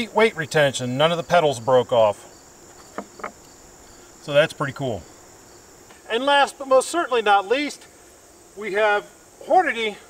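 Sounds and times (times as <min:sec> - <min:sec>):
insects trilling: 0:00.0 - 0:10.0
faint short knocks: 0:02.7 - 0:03.4.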